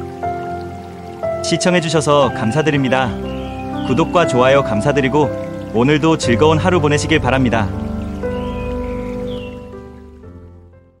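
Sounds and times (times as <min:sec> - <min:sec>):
sustained chords background music: 0:00.0 - 0:11.0.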